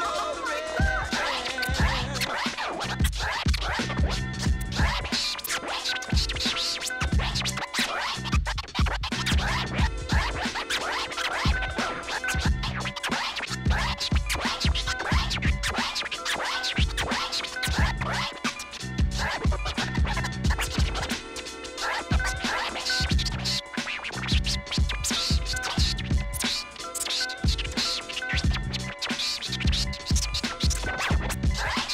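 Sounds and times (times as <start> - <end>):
looping beat: 0.0 - 31.9
turntable scratching: 0.0 - 31.9.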